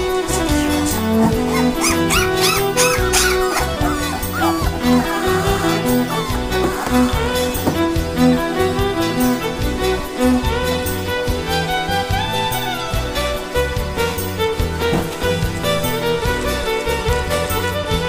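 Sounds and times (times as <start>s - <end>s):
fiddle music: 0.1s - 18.0s
puppies whimpering: 1.3s - 7.9s.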